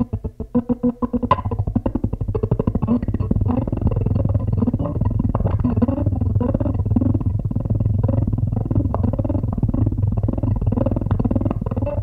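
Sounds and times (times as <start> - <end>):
electric string instrument through amp: 0.0 - 12.0.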